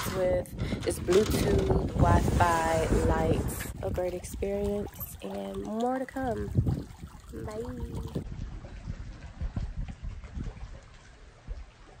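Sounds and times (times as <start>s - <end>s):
wind gusts on microphone: 0.0s - 5.3s, 6.2s - 12.0s.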